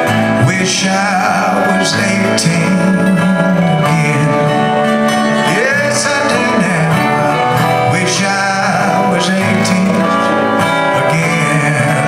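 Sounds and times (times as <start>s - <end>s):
acoustic guitars and mandolin country song: 0.0s - 12.0s.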